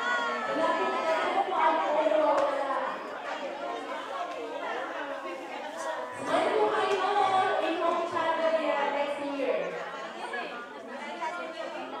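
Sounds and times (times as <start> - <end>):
group of people chattering: 0.0 - 12.0.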